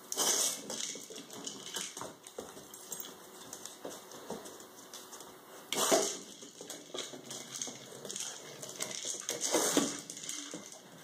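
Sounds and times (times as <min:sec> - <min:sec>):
dog claws clicking on floor: 0:00.1 - 0:11.0.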